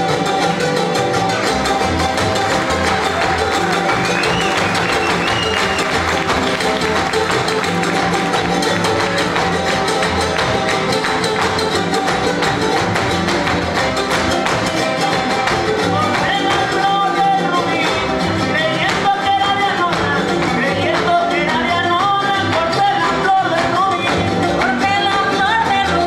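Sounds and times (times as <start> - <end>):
strummed guitars: 0.0 - 26.0
upright bass: 0.0 - 26.0
dancers stamping feet: 2.0 - 16.3.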